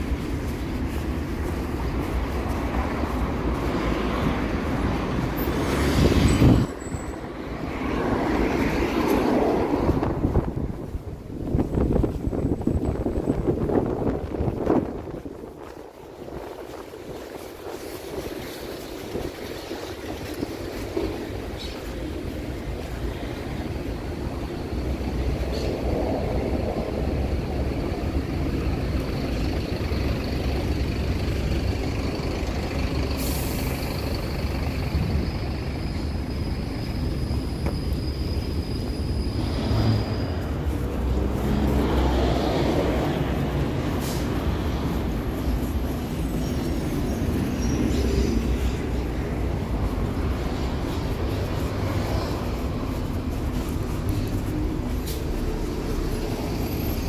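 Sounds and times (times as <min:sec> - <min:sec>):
street traffic rumble: 0:00.0 - 0:57.0.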